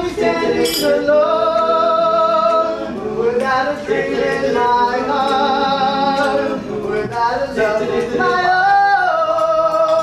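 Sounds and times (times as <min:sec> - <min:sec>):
vocal group singing in harmony: 0:00.0 - 0:10.0.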